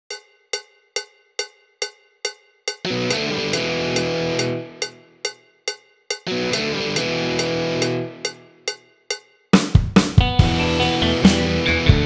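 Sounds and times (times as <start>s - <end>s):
cowbell strikes: 0.1s - 9.9s.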